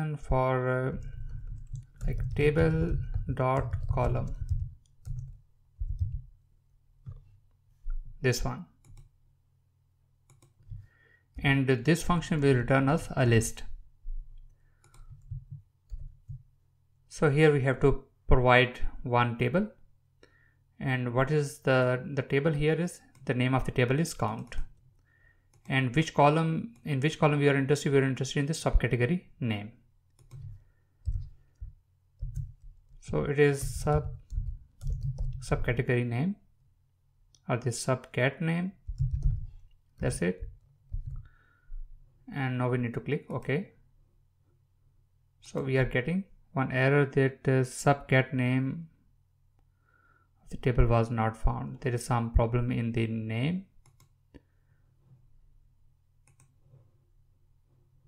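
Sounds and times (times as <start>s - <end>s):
keyboard keystrokes clicking: 33.8s - 35.4s.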